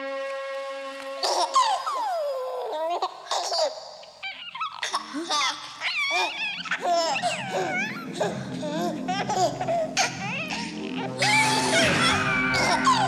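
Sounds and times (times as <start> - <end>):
high-pitched laughter: 4.2 - 13.0
low drone: 7.3 - 13.0.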